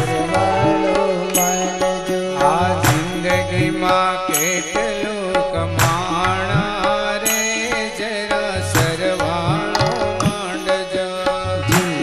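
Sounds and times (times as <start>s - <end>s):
person singing melody: 0.0s - 12.0s
tabla: 0.0s - 12.0s.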